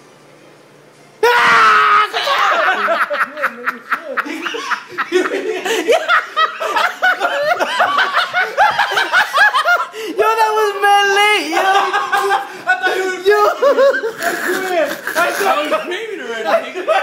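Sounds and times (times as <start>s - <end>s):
person stifled laughter: 11.6s - 15.8s.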